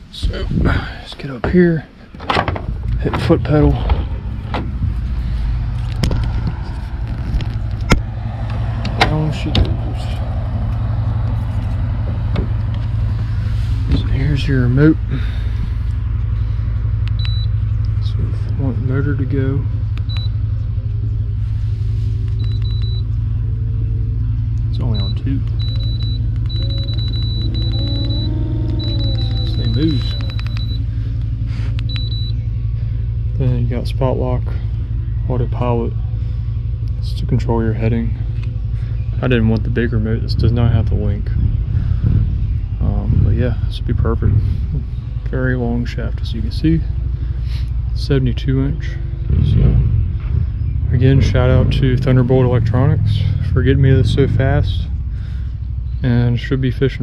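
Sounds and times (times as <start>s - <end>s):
low engine-like hum: 0.0s - 57.0s
motor mount clunks and knocks: 1.4s - 5.0s, 7.3s - 9.8s, 12.2s - 12.9s
short high beep from remote: 25.0s - 30.8s.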